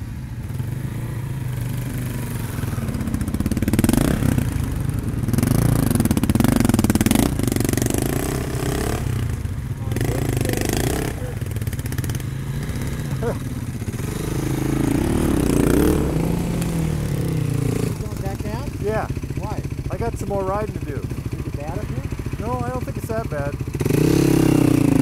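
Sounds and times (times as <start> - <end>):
dirt bike engines idling: 0.0 - 25.0
dirt bike revving: 0.0 - 25.0.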